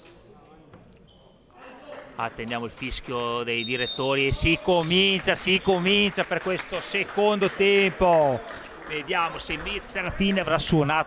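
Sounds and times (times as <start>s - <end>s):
sports hall ambience: 0.0s - 11.0s.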